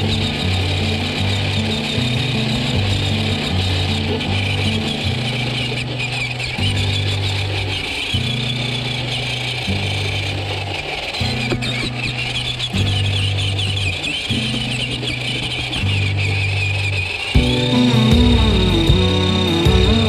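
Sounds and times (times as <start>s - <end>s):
background music: 17.4s - 20.0s.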